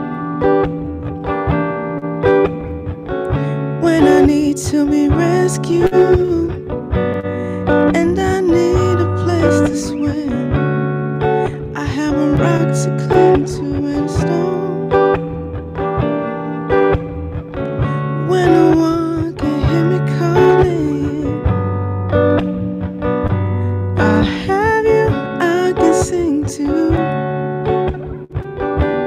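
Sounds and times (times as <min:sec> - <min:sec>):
acoustic guitar strumming: 0:00.0 - 0:29.0
person singing: 0:03.2 - 0:17.0, 0:17.8 - 0:21.8, 0:23.4 - 0:27.9.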